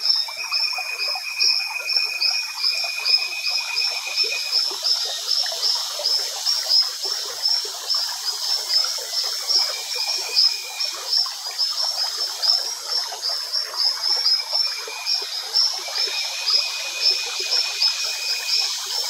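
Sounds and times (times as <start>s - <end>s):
chorus of frog calls: 0.0s - 19.0s.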